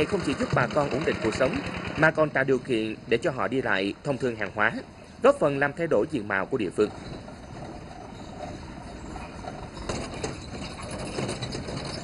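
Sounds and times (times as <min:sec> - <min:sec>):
truck body rattling: 0:00.0 - 0:12.0
truck engine running: 0:00.0 - 0:12.0.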